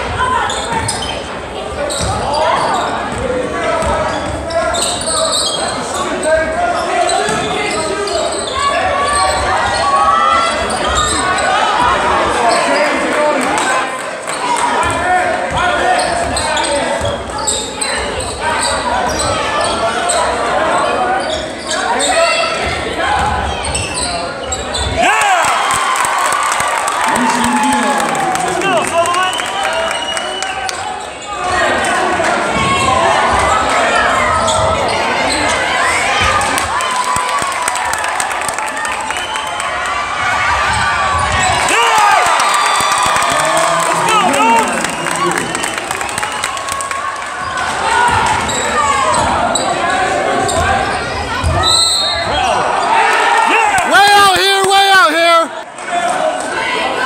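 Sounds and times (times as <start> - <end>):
crowd chatter: 0.0 - 57.0
sneakers squeaking: 0.1 - 13.0, 15.9 - 25.0, 34.2 - 36.4, 47.3 - 53.0
crowd shouting: 25.0 - 57.0.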